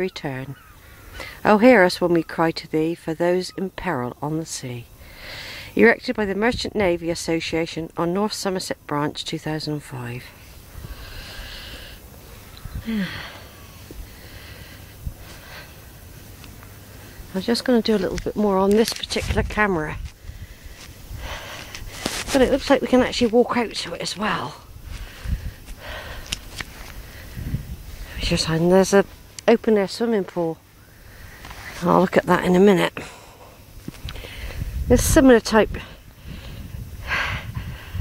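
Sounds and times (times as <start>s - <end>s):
intake of breath: 5.0s - 5.8s, 10.4s - 15.9s, 24.8s - 28.2s
wind rumble on microphone: 10.6s - 11.3s, 12.4s - 13.2s, 15.0s - 15.3s, 18.0s - 23.3s, 24.6s - 28.6s, 33.8s - 38.0s.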